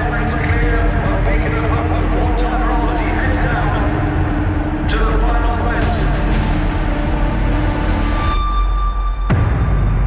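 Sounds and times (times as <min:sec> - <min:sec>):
indistinct voices: 0:00.0 - 0:07.4
steady low rumble: 0:00.0 - 0:08.3.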